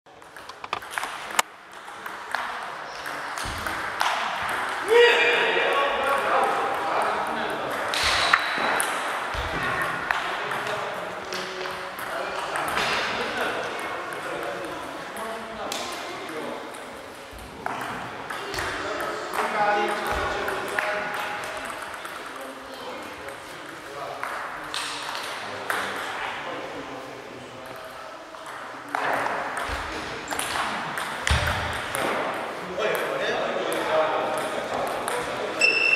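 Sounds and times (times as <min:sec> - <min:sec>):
table tennis balls clicking: 0:00.1 - 0:04.8, 0:15.7 - 0:26.1, 0:27.6 - 0:33.1.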